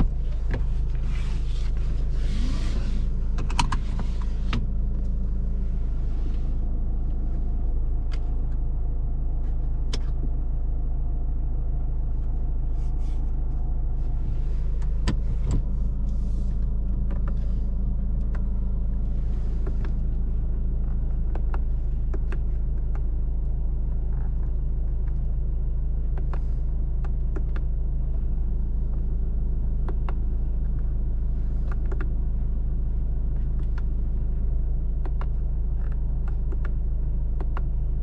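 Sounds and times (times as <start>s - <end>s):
engine and tyre rumble: 0.0s - 38.0s.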